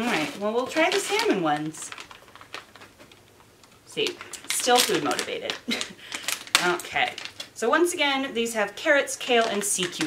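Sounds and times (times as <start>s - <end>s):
plastic pouch crinkling: 0.0s - 7.6s, 9.2s - 10.0s.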